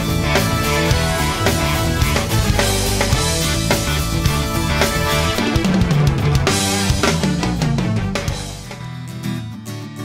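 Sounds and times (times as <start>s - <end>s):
rock music with drums and guitar: 0.0s - 10.0s.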